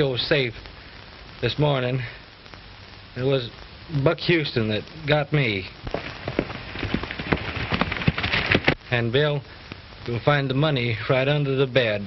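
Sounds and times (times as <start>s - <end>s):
film soundtrack hiss: 0.0s - 12.0s
horse hoofbeats galloping: 5.9s - 8.8s.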